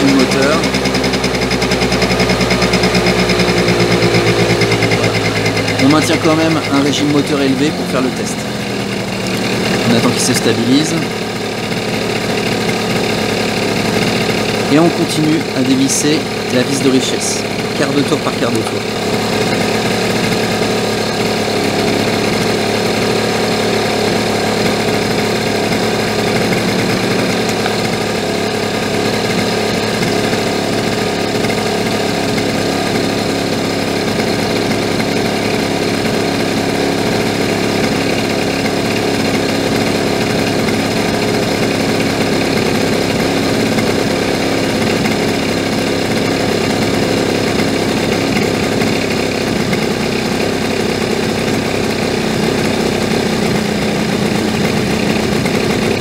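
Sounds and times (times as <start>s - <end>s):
scooter engine idling: 0.0s - 56.0s.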